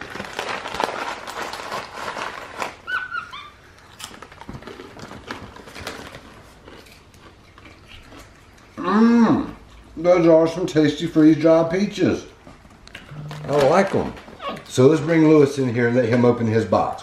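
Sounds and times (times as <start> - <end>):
crunchy food being chewed: 0.1 - 10.0.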